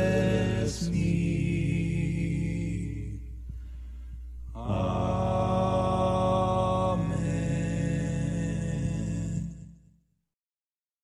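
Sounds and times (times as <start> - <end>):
choir holding a chord: 0.0 - 3.2, 4.4 - 9.7.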